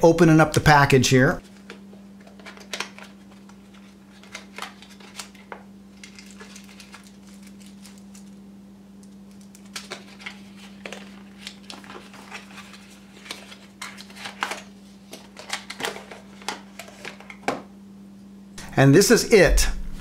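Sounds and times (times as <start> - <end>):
steady low hum: 0.0 - 20.0
packaging crinkling and clicking: 1.5 - 8.4, 9.0 - 17.4.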